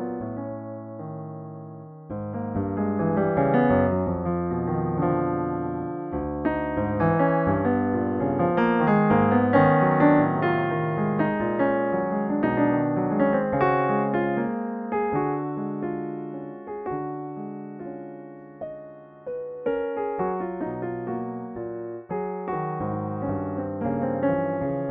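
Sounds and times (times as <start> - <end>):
solo piano: 0.0 - 24.9.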